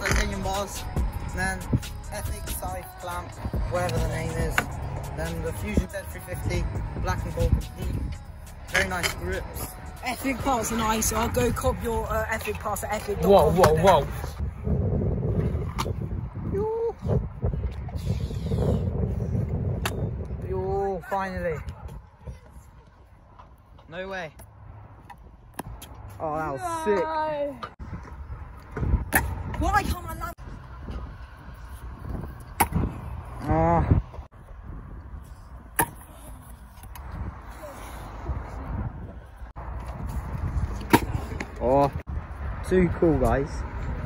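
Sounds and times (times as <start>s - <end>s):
scooter wheels rolling on concrete: 0.0s - 1.4s, 7.1s - 14.4s, 20.7s - 44.0s.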